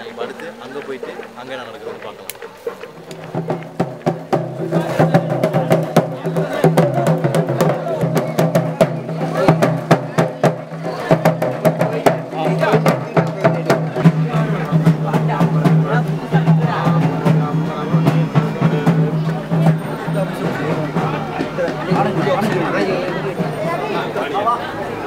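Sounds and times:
music with drums and wood block: 0:00.0 - 0:25.0
voices: 0:00.0 - 0:25.0.

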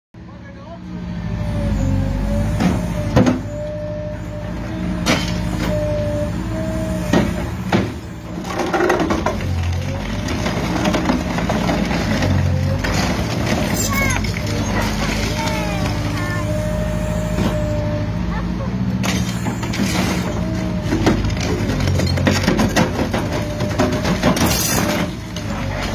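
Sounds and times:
excavator engine whining: 0:00.8 - 0:25.9.

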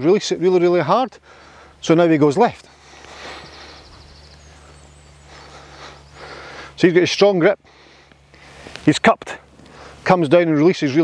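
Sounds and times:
steady low hum: 0:00.0 - 0:11.0
faint high wavering chirp: 0:00.1 - 0:07.7.

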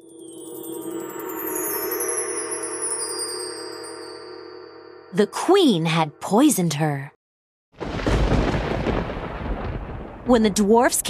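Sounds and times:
heavy rain: 0:07.8 - 0:11.0
thunder rumbling: 0:07.8 - 0:11.0.

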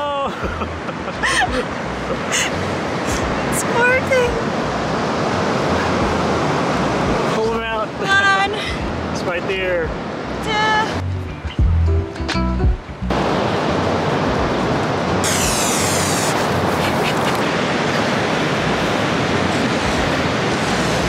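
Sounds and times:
ocean surf rushing: 0:00.0 - 0:11.1, 0:13.0 - 0:21.0
wind buffeting microphone: 0:13.6 - 0:21.0.

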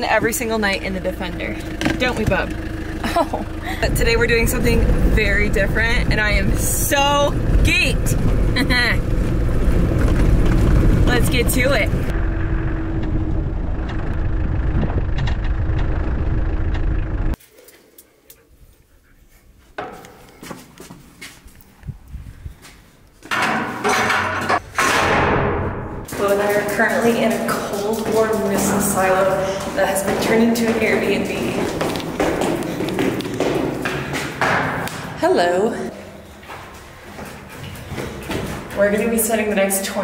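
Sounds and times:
vehicle engine and road rumble: 0:00.0 - 0:17.4, 0:18.8 - 0:40.0
footsteps on hard floor: 0:26.1 - 0:35.2, 0:36.0 - 0:39.8.

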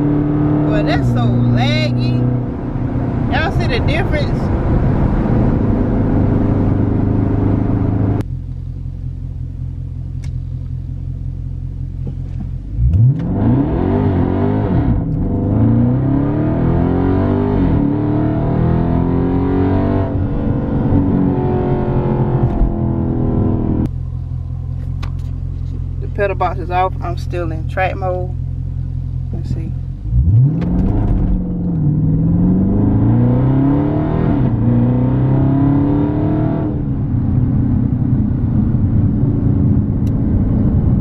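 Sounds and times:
car engine accelerating: 0:00.0 - 0:41.0.

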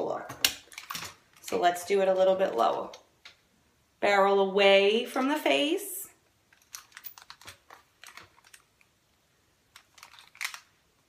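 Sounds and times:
curling iron clicks and rustles: 0:00.4 - 0:03.4, 0:09.7 - 0:10.7.

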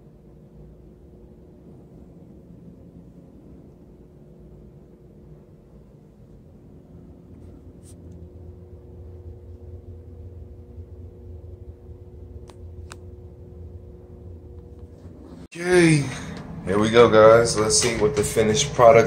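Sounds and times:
low hum and rumble: 0:00.0 - 0:19.0.

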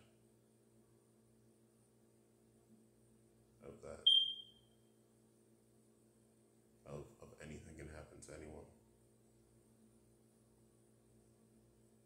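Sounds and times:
short high-pitched beep: 0:04.1 - 0:04.6.

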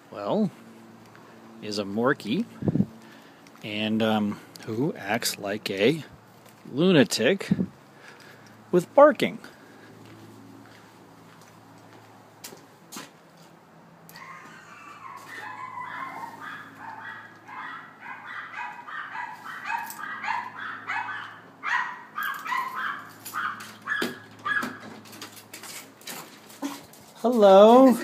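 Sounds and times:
small dogs barking: 0:14.2 - 0:24.9.

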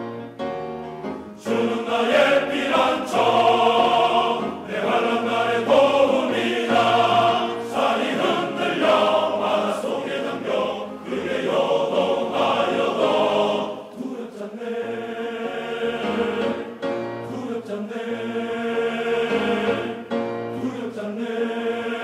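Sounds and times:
men's choir singing: 0:01.4 - 0:22.0.

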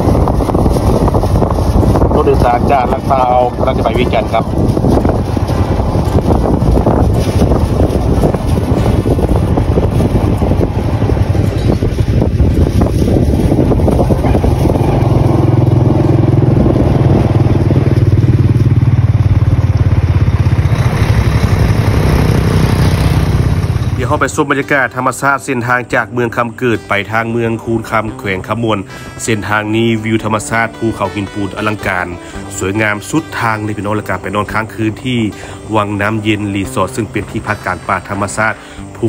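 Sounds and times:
vehicle engine and road noise: 0:00.0 - 0:39.0.

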